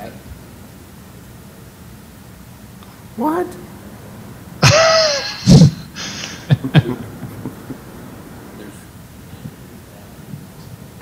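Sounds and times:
man clearing his throat: 0:04.6 - 0:07.7.

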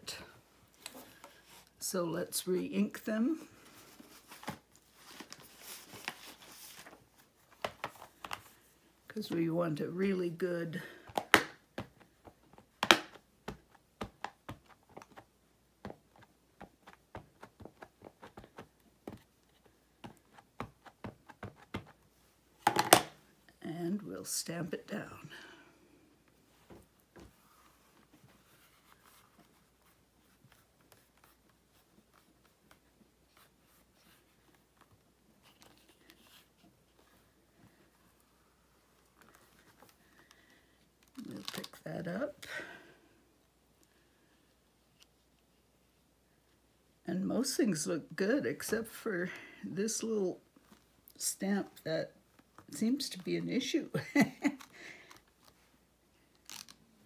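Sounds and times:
person speaking: 0:09.1 - 0:11.0, 0:23.5 - 0:25.7, 0:41.1 - 0:42.9, 0:47.1 - 0:50.5, 0:51.1 - 0:54.7.

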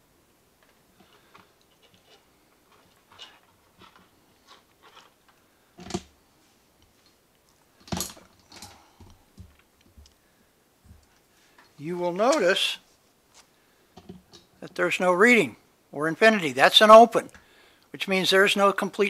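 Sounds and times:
clicks and rustles of wires: 0:00.6 - 0:06.1, 0:06.8 - 0:10.2, 0:10.8 - 0:14.8.

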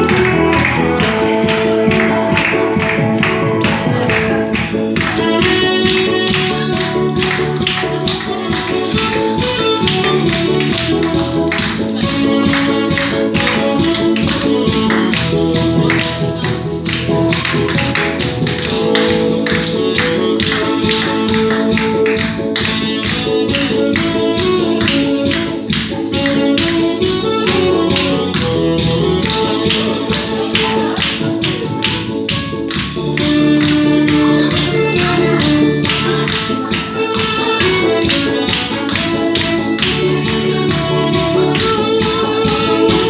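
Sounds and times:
tenor saxophone melody: 0:00.0 - 0:16.4, 0:18.9 - 0:31.0
backing track with drum beat: 0:00.0 - 0:43.0.

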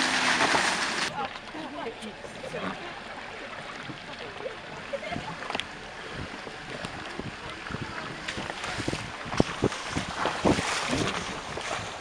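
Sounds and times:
knocks and splashes: 0:00.0 - 0:01.6, 0:02.6 - 0:12.0
car rumbling on rough road: 0:00.0 - 0:12.0.

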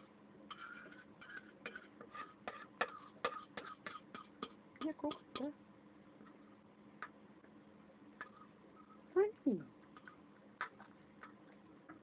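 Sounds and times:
fork clicking and scraping on plate: 0:00.5 - 0:02.3.

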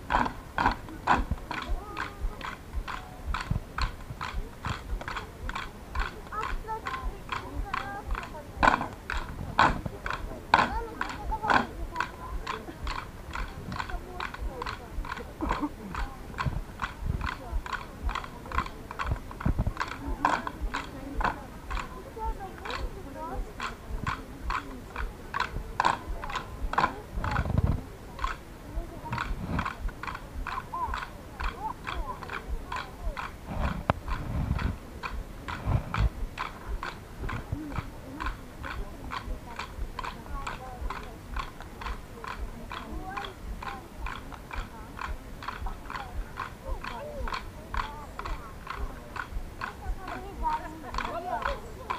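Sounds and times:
deep thuds: 0:00.0 - 0:51.9
wooden sticks clacking: 0:00.1 - 0:22.0, 0:23.6 - 0:28.5, 0:29.2 - 0:51.9.

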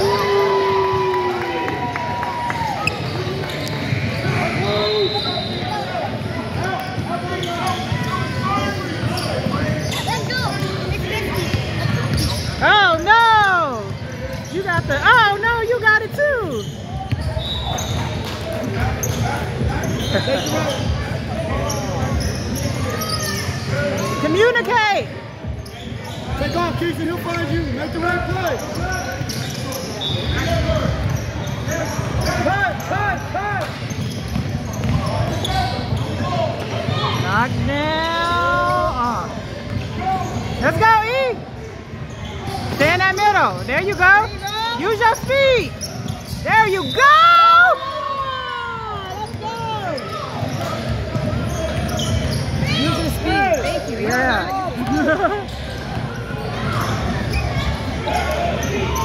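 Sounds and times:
chatter of players and spectators: 0:00.0 - 0:59.0.

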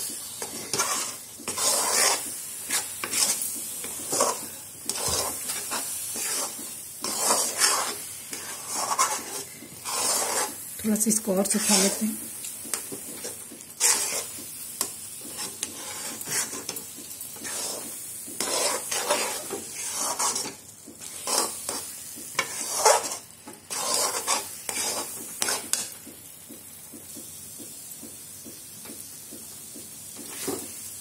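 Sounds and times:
soft sizzle: 0:00.0 - 0:31.0
metal spoon scraping metal pan: 0:00.3 - 0:26.0.

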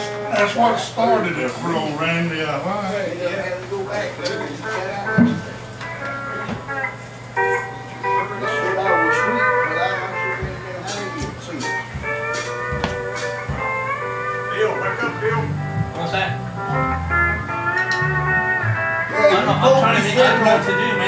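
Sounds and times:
guitar: 0:00.0 - 0:21.0
pedal steel guitar: 0:00.0 - 0:21.0
bass line: 0:12.7 - 0:21.0.

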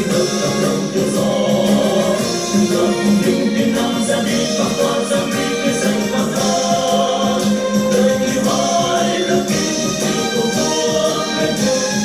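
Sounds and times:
instrumental backing with steady beat: 0:00.0 - 0:12.0
women singing in unison: 0:00.0 - 0:12.0.

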